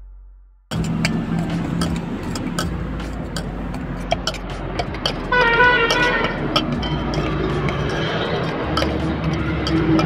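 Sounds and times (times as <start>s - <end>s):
metal spoon scraping steel bowl: 0.7s - 10.0s
vehicle engine running: 0.7s - 10.0s.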